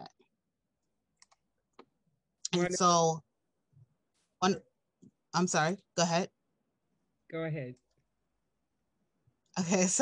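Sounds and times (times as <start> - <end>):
faint computer mouse clicks: 1.2 - 1.9.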